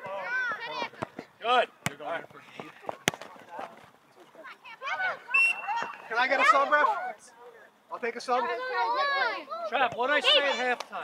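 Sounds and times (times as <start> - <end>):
voices shouting: 4.6 - 7.2.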